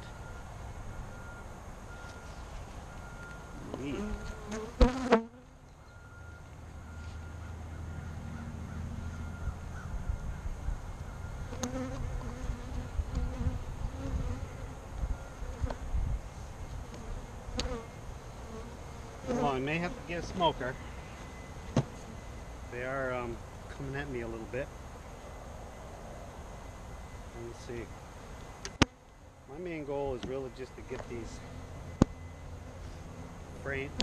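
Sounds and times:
bees buzzing: 1.9s - 5.6s, 10.8s - 24.2s
knocks of hive parts: 21.7s - 22.0s.

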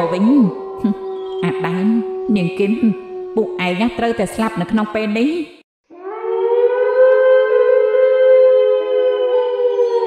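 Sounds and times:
wailing siren-like tone: 0.0s - 4.2s, 5.9s - 10.0s.

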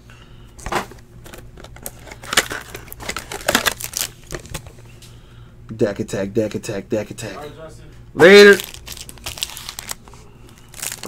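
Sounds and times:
plastic wrapper crinkling: 1.2s - 4.6s, 8.4s - 11.0s.

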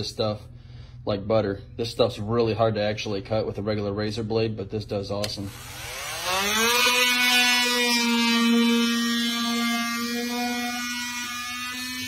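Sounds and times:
oscillating multi-tool buzzing: 5.5s - 12.0s.

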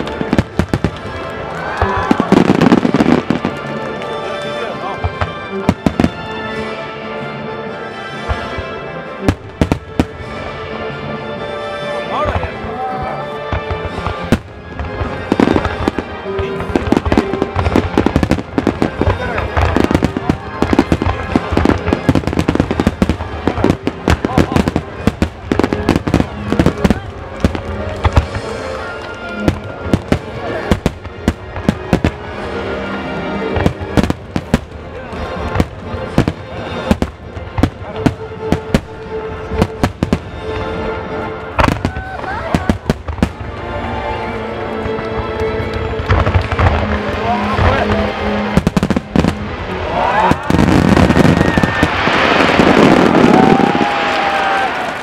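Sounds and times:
fireworks bangs and crackles: 0.0s - 6.8s, 8.1s - 10.6s, 12.2s - 55.0s.

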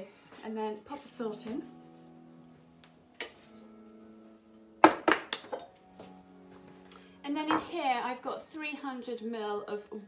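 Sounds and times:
soft background music: 0.0s - 10.0s
ceramic bowl clinking on steel bowl: 5.0s - 5.8s.

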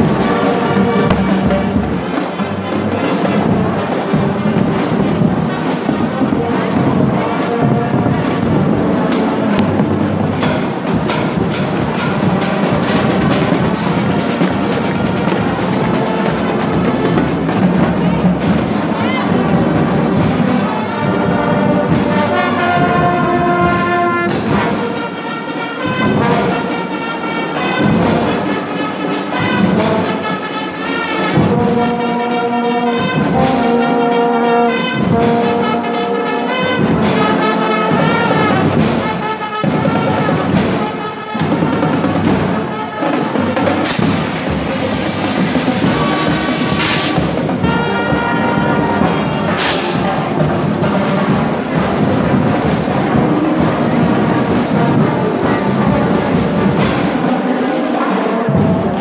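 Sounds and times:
brass section playing chords: 0.0s - 59.0s
marching drums: 0.0s - 59.0s
bright noisy crash: 43.8s - 47.7s.

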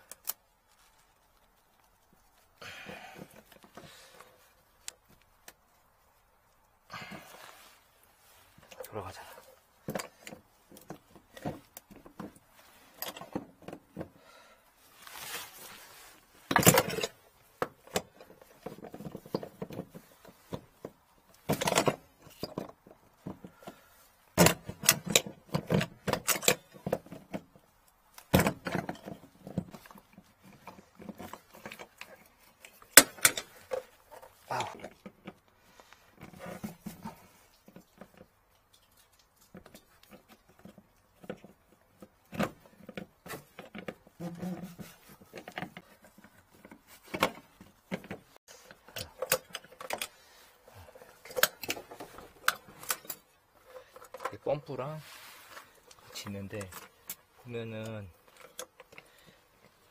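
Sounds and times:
metal and plastic parts clinking: 16.5s - 23.4s, 24.4s - 27.6s, 28.2s - 35.4s, 36.2s - 54.7s.

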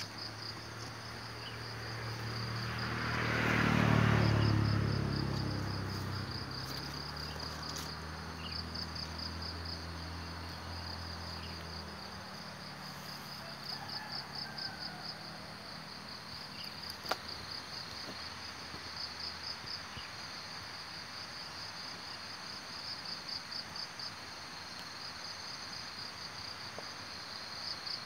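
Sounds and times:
low engine hum: 0.0s - 19.5s
insects chirping: 0.0s - 28.0s.

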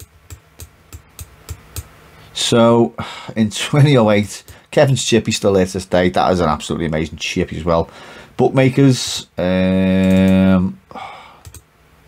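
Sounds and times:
computer keys clicking: 0.0s - 1.9s, 9.9s - 10.6s, 11.4s - 11.7s.

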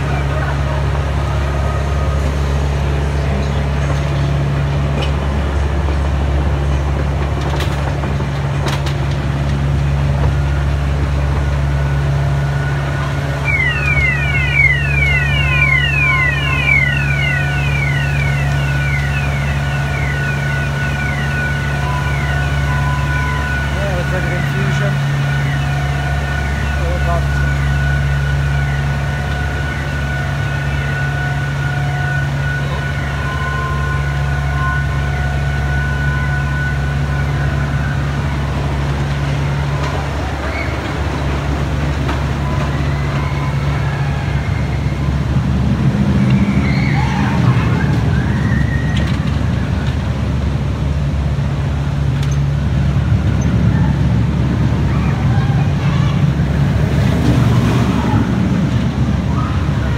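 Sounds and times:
diesel locomotive engine running: 0.0s - 59.9s.

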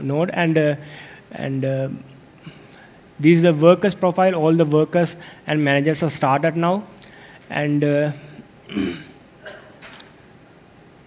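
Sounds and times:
man coughing: 8.7s - 9.8s.

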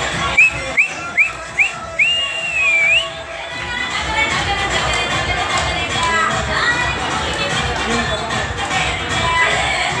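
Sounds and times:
dance music: 0.0s - 10.0s
person whistling: 0.4s - 3.1s.

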